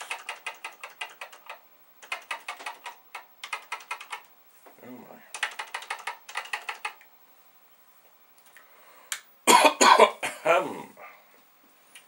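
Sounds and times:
man coughing: 0:09.5 - 0:10.8.

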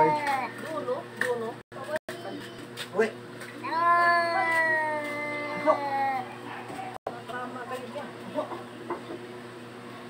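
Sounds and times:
cat meowing: 0:03.6 - 0:06.3.

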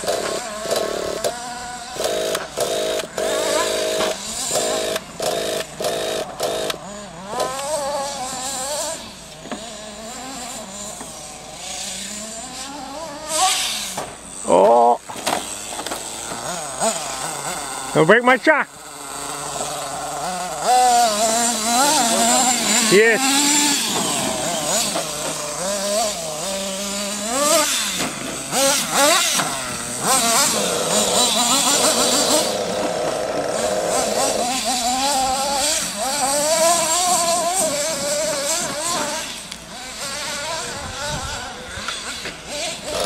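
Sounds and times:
small engines revving: 0:00.0 - 0:43.0.

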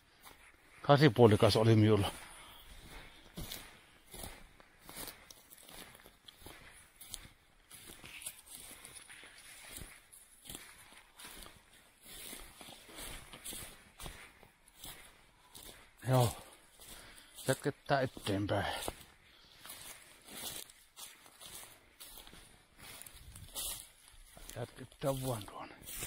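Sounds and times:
footsteps through dry grass: 0:00.0 - 0:26.0.

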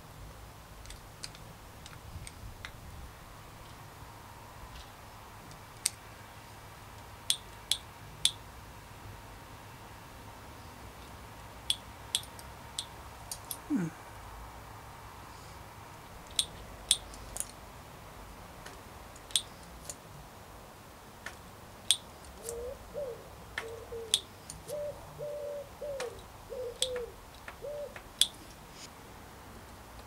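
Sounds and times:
bird cooing: 0:22.4 - 0:28.0.

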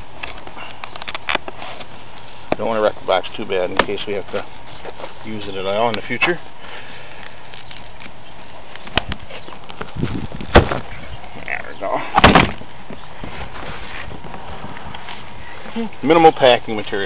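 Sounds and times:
cardboard rustling scrape: 0:01.4 - 0:02.0, 0:13.2 - 0:15.3.

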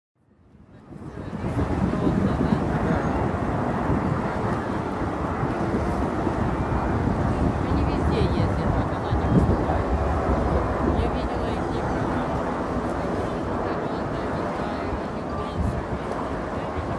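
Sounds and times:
distant jet rumble: 0:00.6 - 0:16.9
crowd voices: 0:00.7 - 0:16.9.

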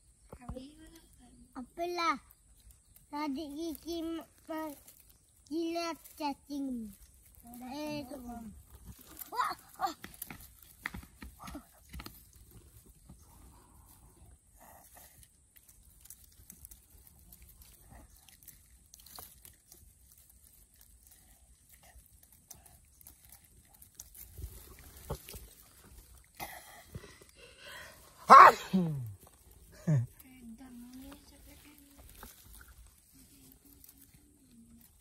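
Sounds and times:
dry straw crackling and rustling: 0:00.8 - 0:35.0.

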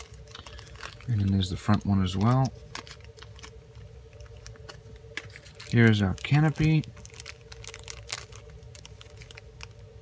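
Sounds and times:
plastic bags rustling: 0:00.0 - 0:09.9
faint steady hum: 0:00.0 - 0:10.0.

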